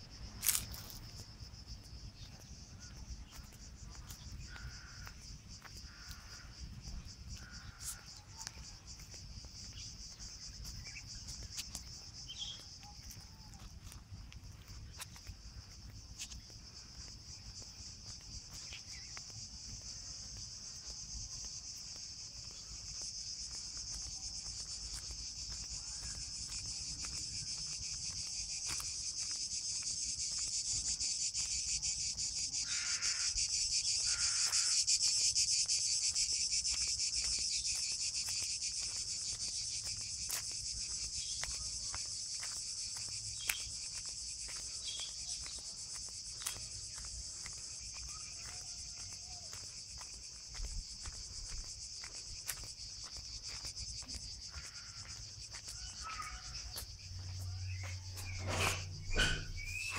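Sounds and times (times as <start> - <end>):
cicadas chorus: 0.0 - 59.9
footsteps on gravel: 0.0 - 59.9.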